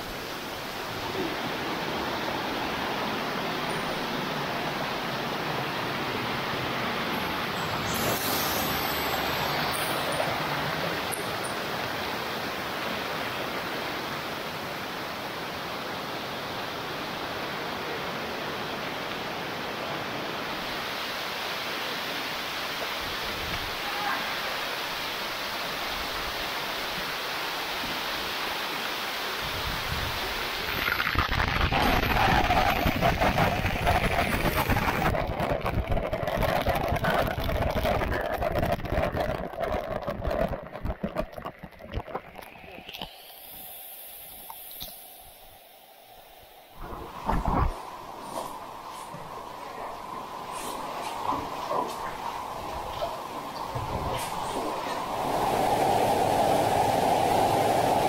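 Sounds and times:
waterfall pouring: 0:00.0 - 0:13.9, 0:30.3 - 0:45.6
stream rushing over boulders: 0:00.0 - 0:58.0.

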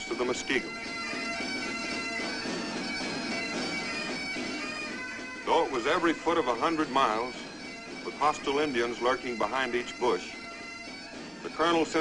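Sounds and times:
bagpipes playing a march: 0:00.0 - 0:12.0.

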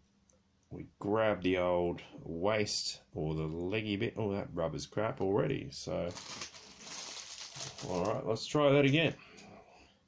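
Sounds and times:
plastic bag crinkling: 0:06.0 - 0:08.3.

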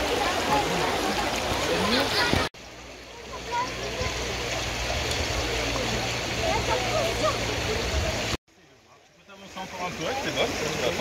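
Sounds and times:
children's voices: 0:00.0 - 0:02.5, 0:06.4 - 0:08.4
river running over stones: 0:00.0 - 0:11.0.

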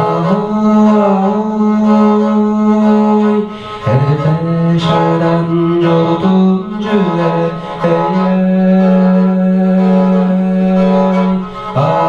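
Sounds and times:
bowed fiddle held notes: 0:00.0 - 0:12.0.

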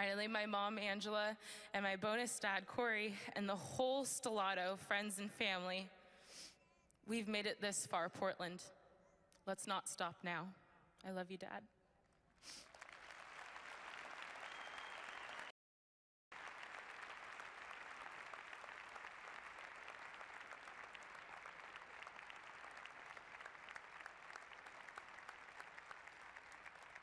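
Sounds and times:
audience applauding: 0:12.5 - 0:15.5, 0:16.3 - 0:27.0.

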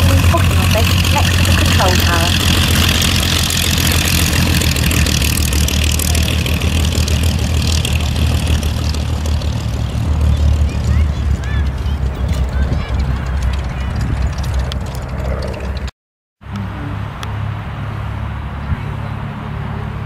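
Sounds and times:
propeller plane engines droning: 0:00.0 - 0:20.0.

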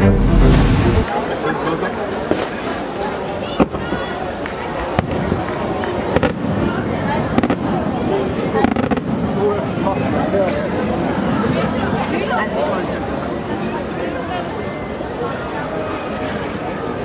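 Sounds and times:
spectators chattering: 0:00.0 - 0:17.0.

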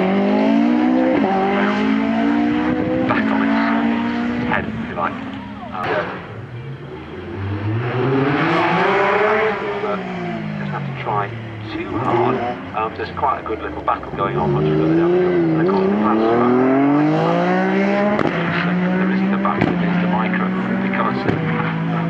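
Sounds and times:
car engine passing: 0:00.0 - 0:22.0
rally car engine revving: 0:00.0 - 0:22.0.

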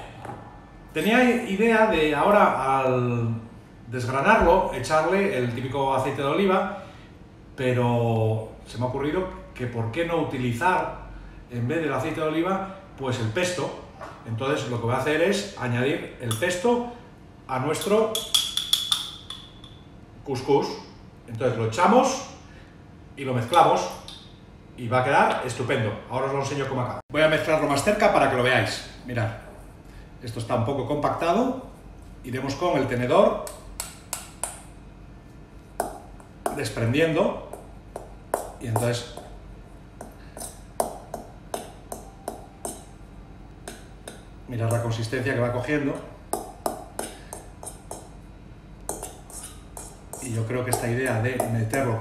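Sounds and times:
metal spoon tapping glass jar: 0:17.8 - 0:19.8, 0:40.0 - 0:42.9, 0:46.3 - 0:48.1, 0:48.9 - 0:52.0
fork scraping metal bowl: 0:48.9 - 0:51.4.

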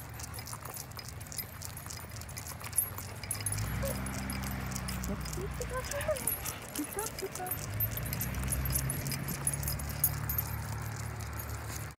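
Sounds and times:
dog tags jingling: 0:00.0 - 0:12.0.

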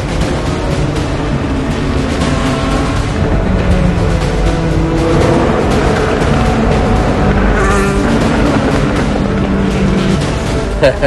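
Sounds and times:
race car engine at speed: 0:00.0 - 0:11.0
man laughing: 0:10.7 - 0:11.0.

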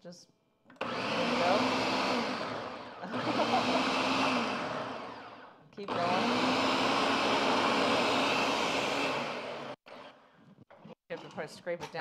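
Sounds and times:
blender motor running: 0:00.8 - 0:10.2.

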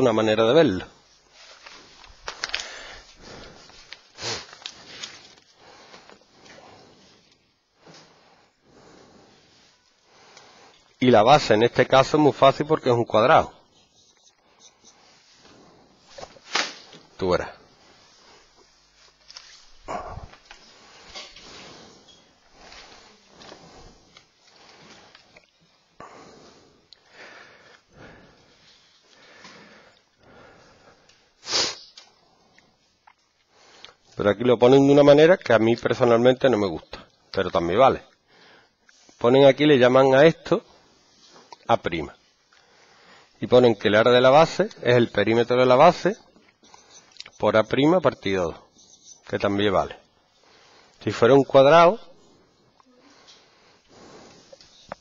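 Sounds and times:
book rustling: 0:01.3 - 0:06.2, 0:18.4 - 0:21.9
person sniffing: 0:02.6 - 0:07.3, 0:17.9 - 0:25.2, 0:29.2 - 0:32.2, 0:52.9 - 0:55.0.

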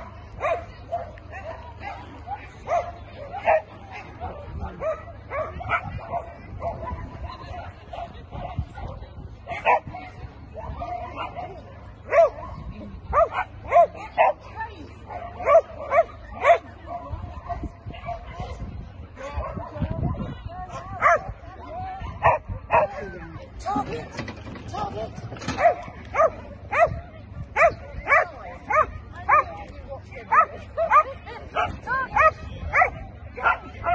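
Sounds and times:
dog barking: 0:00.0 - 0:02.0, 0:02.7 - 0:09.9, 0:12.1 - 0:14.4, 0:15.1 - 0:18.4, 0:21.0 - 0:21.3, 0:25.5 - 0:27.0, 0:27.6 - 0:29.5, 0:30.3 - 0:33.9.

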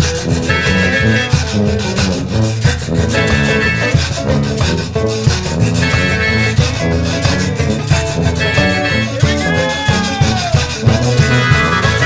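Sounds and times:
band playing live: 0:00.0 - 0:12.0
bass line: 0:00.0 - 0:12.0.

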